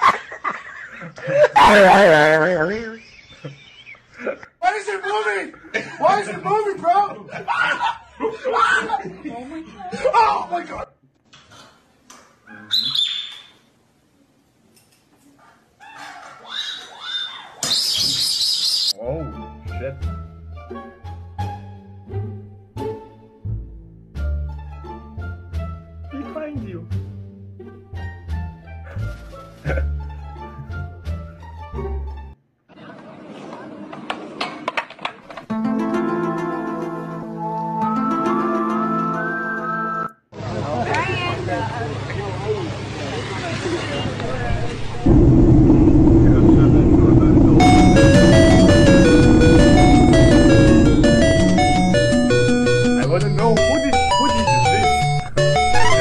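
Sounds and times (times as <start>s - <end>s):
shrill hissy whistle: 12.7s - 13.6s
loud steady low rumble: 44.2s - 53.9s
short rising and falling tone: 44.3s - 56.0s.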